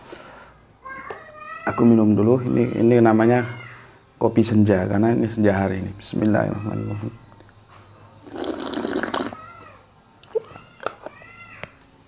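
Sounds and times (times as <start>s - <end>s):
person slurping coffee: 8.2s - 9.4s.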